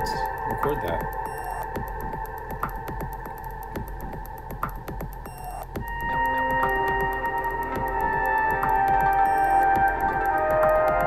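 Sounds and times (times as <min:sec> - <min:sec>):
fast ticking pulse: 0:00.0 - 0:11.0
held synth tones: 0:00.0 - 0:11.0.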